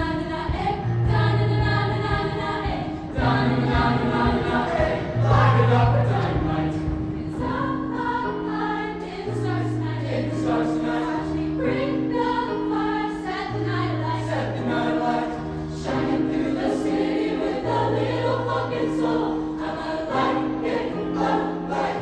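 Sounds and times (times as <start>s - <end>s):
choir singing pop song: 0.0s - 22.0s.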